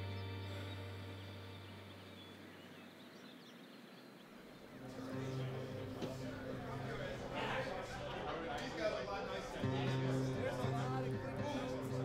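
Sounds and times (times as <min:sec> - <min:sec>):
distant bird chirps: 0:00.0 - 0:06.2.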